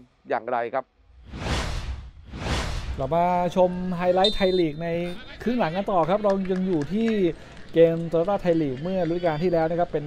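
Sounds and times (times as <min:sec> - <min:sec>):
low rumble: 0:01.1 - 0:03.4
whoosh sound effects: 0:01.1 - 0:03.6.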